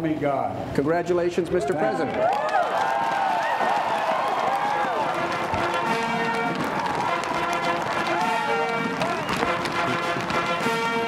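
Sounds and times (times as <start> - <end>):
crowd cheering: 1.6 - 11.0
military brass band playing: 4.6 - 11.0.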